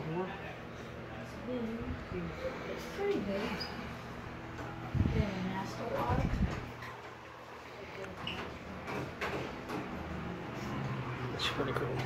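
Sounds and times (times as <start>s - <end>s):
low indoor hum: 0.0s - 12.0s.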